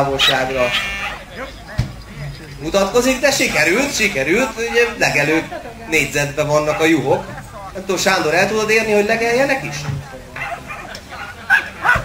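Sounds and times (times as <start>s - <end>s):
puppy yapping: 10.4s - 12.0s.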